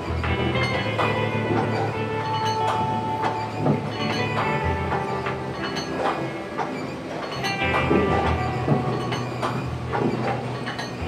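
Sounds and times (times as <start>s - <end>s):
background music: 0.0s - 11.0s
machine humming: 0.0s - 11.0s
machine mechanical knocks: 0.0s - 11.0s.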